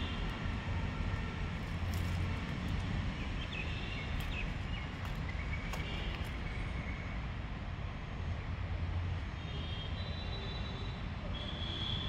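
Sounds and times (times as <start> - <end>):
steady low rumble: 0.0 - 6.8.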